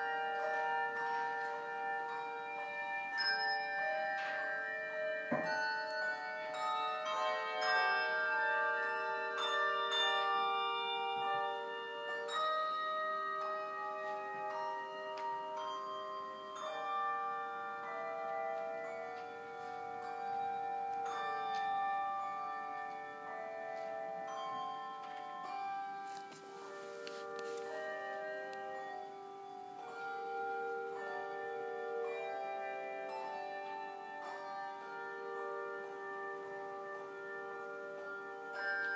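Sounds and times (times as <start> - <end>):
handbells ringing chord: 0.0 - 38.9.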